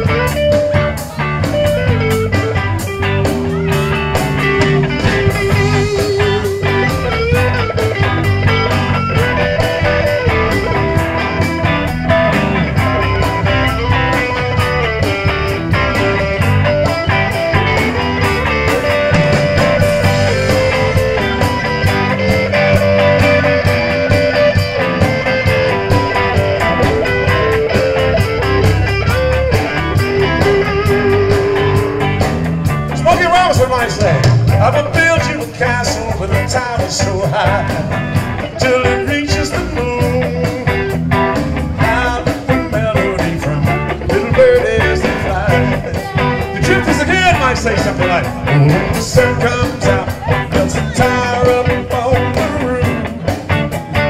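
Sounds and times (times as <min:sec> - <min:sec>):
bass: 0:00.0 - 0:54.0
drums: 0:00.0 - 0:54.0
electric guitar with wavering notes: 0:00.0 - 0:54.0.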